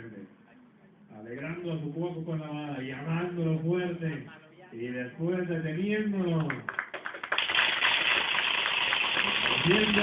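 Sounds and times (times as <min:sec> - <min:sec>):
crowd applauding: 0:06.4 - 0:10.0.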